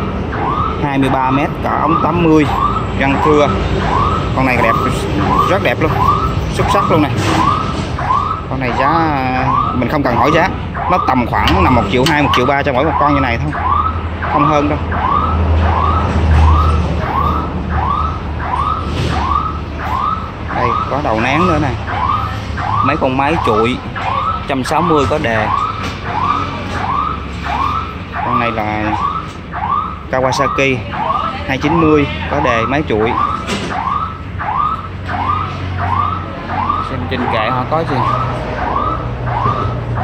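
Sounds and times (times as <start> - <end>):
electronic siren yelping: 0.0 - 40.0.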